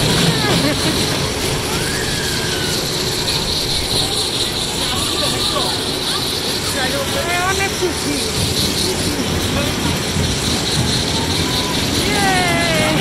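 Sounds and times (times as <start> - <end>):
children calling out: 0.0 - 6.3, 10.7 - 13.0
coaster train on steel track: 0.0 - 13.0
fairground machinery drone: 0.0 - 13.0.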